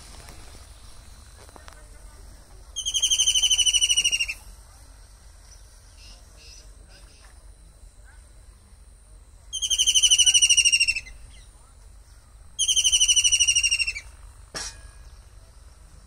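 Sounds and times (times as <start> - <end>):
kingfisher trilling: 2.8 - 4.4, 9.5 - 11.2, 12.6 - 14.1.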